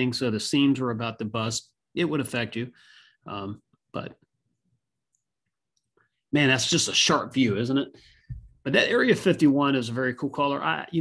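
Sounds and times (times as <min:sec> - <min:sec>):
person speaking: 0:06.3 - 0:11.0.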